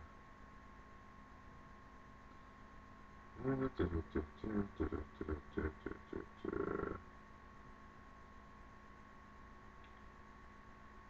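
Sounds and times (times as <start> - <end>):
faint electrical hum: 0.0 - 11.0
man humming: 3.4 - 7.0.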